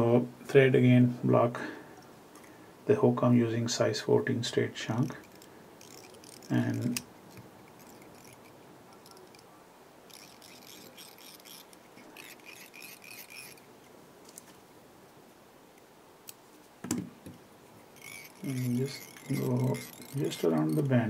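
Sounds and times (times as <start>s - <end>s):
thread rustling onto bobbin hook: 5.2s - 9.5s, 17.8s - 20.9s.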